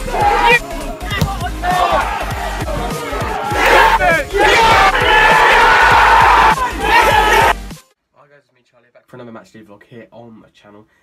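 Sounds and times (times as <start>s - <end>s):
stadium crowd roaring and cheering: 0.0s - 7.7s.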